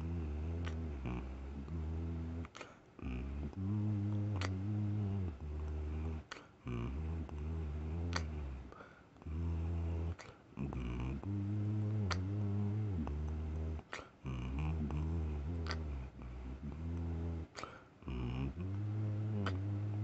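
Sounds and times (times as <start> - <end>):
man humming a slow tune: 0.0 - 20.0.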